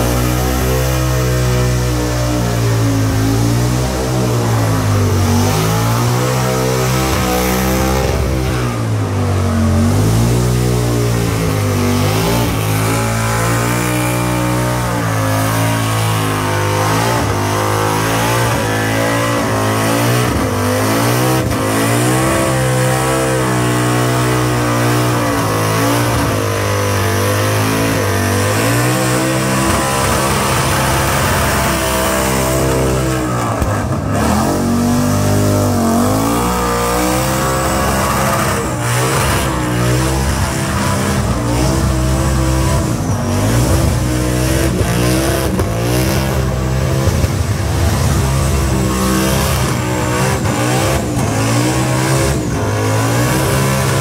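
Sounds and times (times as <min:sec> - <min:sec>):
car engine revving high: 0:00.0 - 0:54.0.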